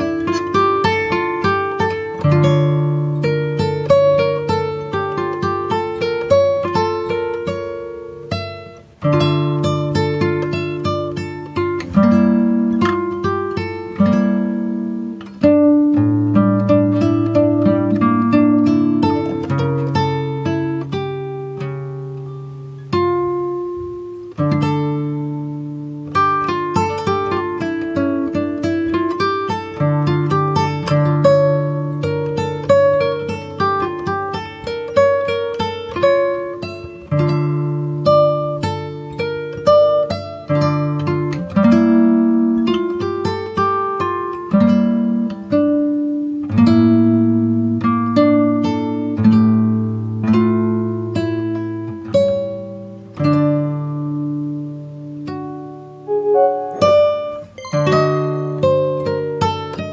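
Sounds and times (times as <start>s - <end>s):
acoustic guitar melody: 0.0s - 59.9s.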